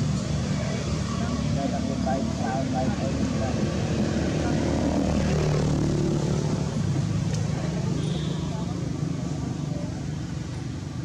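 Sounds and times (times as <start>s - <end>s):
low engine drone: 0.0s - 7.3s.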